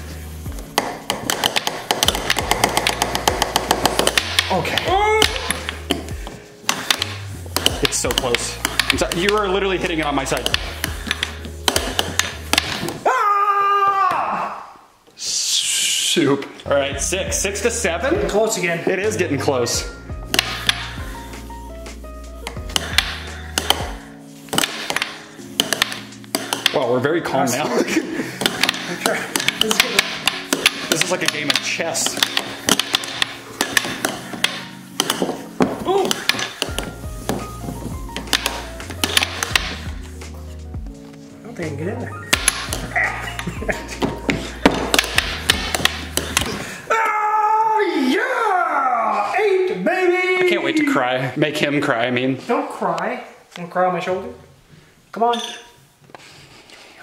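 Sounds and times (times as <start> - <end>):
background music with held notes: 0.0 - 13.1, 16.6 - 46.9
air hockey mallets hitting puck: 0.5 - 13.0, 20.2 - 21.1, 22.4 - 27.0, 28.3 - 40.1, 42.3 - 46.8.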